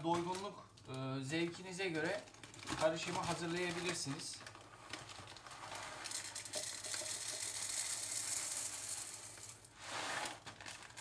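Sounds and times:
coffee beans rattling pour: 1.4 - 11.0.

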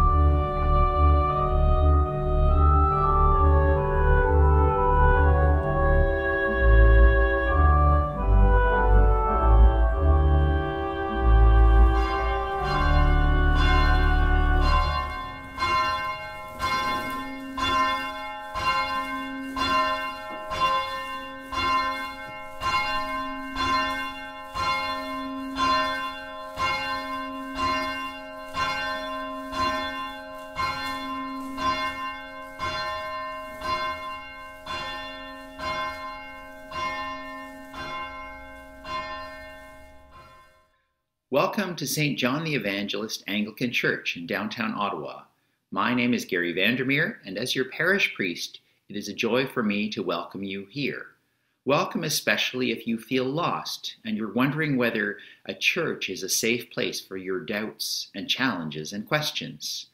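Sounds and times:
organ chord: 0.0 - 20.4
church bell tolling: 0.0 - 40.8.

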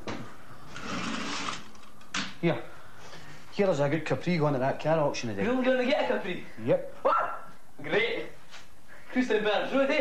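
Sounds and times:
dog barking: 7.0 - 7.5.

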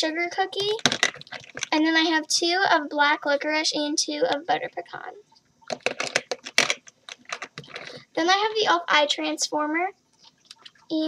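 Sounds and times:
plastic containers clicking: 0.6 - 1.7, 5.7 - 8.0.

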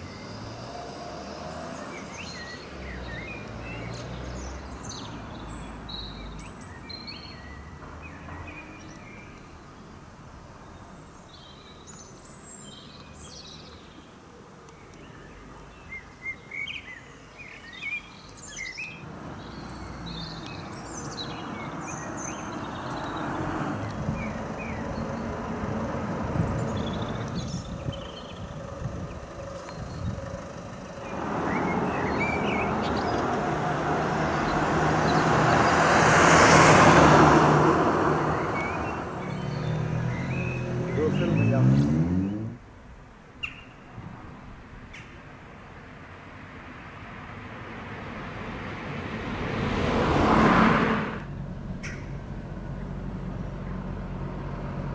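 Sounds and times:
small birds chirping: 0.0 - 36.2, 38.0 - 42.6, 43.3 - 43.9
cars passing on road: 0.0 - 54.9.

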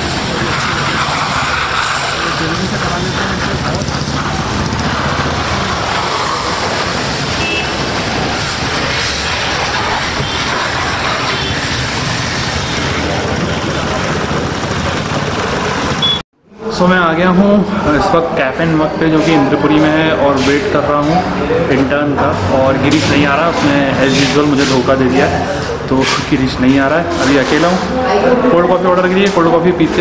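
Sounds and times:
hose jet spraying water: 0.0 - 14.7.

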